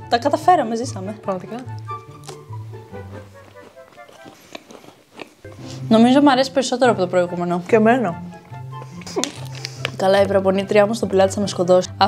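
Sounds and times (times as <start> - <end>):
woman speaking: 0.0 - 1.8, 5.8 - 8.3, 9.9 - 12.0
soft background music: 0.0 - 4.7, 5.4 - 12.0
chewing cookie crunches: 1.6 - 5.6, 8.7 - 10.0.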